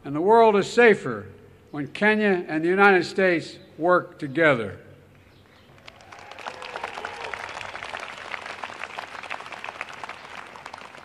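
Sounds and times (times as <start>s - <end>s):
audience applauding: 5.7s - 11.0s.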